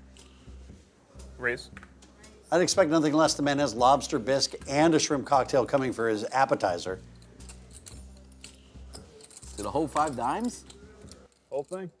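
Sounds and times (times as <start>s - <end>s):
quiet music bed: 0.0s - 12.0s.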